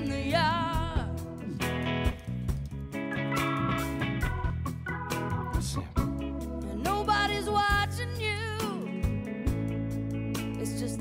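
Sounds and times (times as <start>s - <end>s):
person singing: 0.0s - 1.2s, 6.6s - 9.0s
held chords over bass note: 3.2s - 8.5s.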